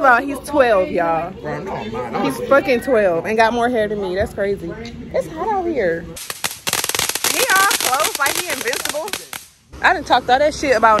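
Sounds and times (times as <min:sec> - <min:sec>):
firework crackling pops: 0:06.2 - 0:09.6.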